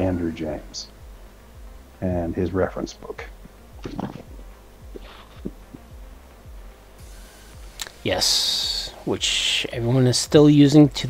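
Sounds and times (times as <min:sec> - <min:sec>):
steady low hum: 0:00.0 - 0:11.0
low heartbeat-like thumps: 0:03.3 - 0:07.8.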